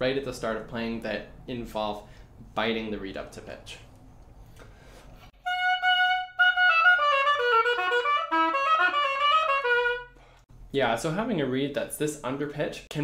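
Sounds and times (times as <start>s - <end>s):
oboe playing: 5.4s - 10.4s.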